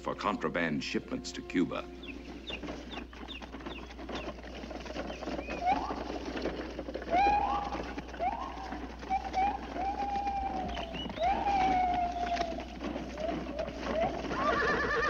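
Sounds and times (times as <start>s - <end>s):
forest bird calls: 1.6s - 4.4s, 5.0s - 6.3s, 7.1s - 14.5s.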